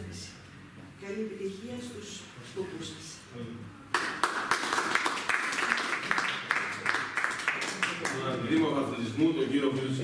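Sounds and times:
people clapping: 0:03.9 - 0:08.9.

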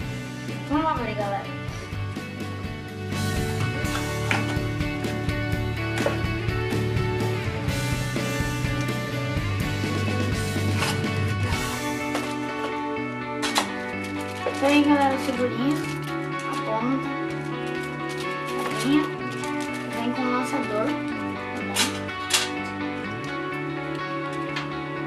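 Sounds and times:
background music with sustained chords: 0:00.0 - 0:25.0.

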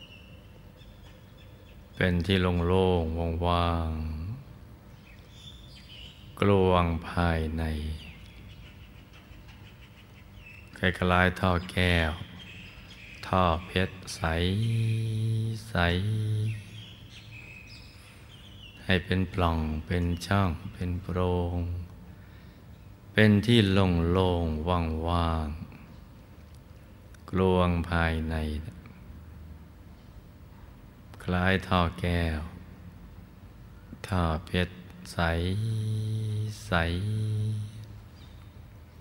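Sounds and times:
faint bird chirps: 0:00.0 - 0:02.4, 0:07.3 - 0:23.0, 0:35.2 - 0:39.0
man speaking: 0:02.0 - 0:04.4, 0:10.8 - 0:12.3, 0:13.3 - 0:16.7, 0:34.0 - 0:37.8
room noise: 0:13.3 - 0:18.1, 0:33.0 - 0:39.0.

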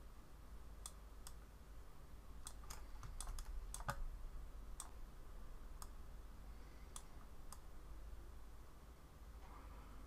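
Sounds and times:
faint computer keyboard clicks: 0:02.4 - 0:04.0.

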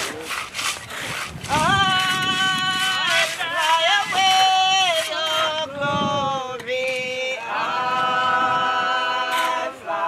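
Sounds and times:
trowel scraping wet cement: 0:00.0 - 0:05.7, 0:09.1 - 0:09.8
people singing: 0:01.5 - 0:10.0.

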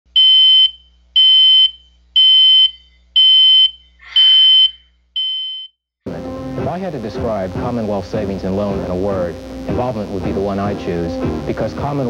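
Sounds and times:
electronic alarm beeping: 0:00.2 - 0:05.8.

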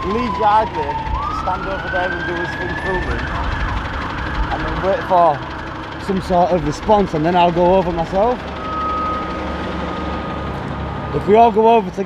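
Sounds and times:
bus engine idling: 0:00.0 - 0:12.0
high electronic tone: 0:08.5 - 0:10.5.

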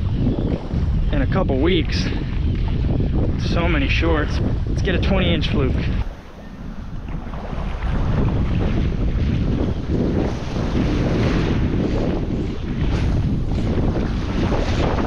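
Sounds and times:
wind buffeting microphone: 0:00.0 - 0:15.0
small waves washing onto sand: 0:03.4 - 0:15.0.

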